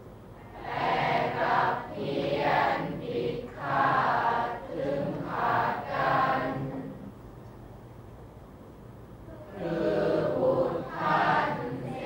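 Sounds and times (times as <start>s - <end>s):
students chanting verse together: 0.4s - 7.1s, 9.4s - 12.0s.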